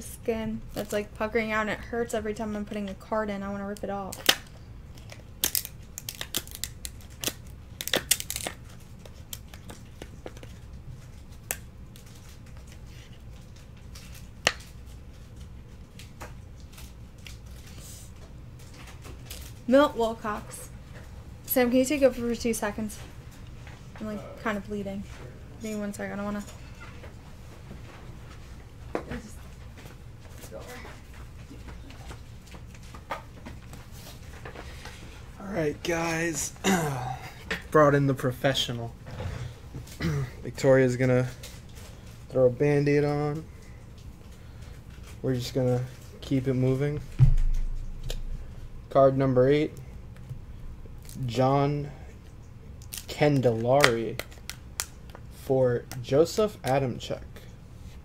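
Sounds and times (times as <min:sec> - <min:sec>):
steady low hum: 0:00.0 - 0:58.0
plastic card sleeve crinkling: 0:04.0 - 0:17.8, 0:52.8 - 0:55.3.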